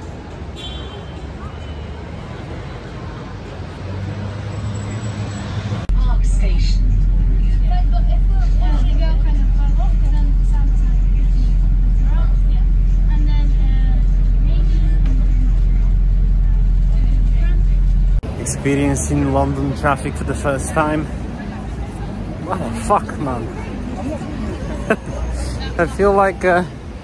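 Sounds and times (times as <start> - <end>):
street traffic noise: 0.0 - 27.0
bus engine low rumble: 2.4 - 19.5.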